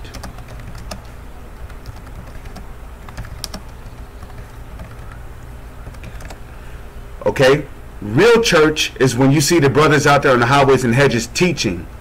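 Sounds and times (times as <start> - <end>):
keyboard typing: 0.0 - 5.2, 5.8 - 6.4
steady low hum: 0.0 - 12.0.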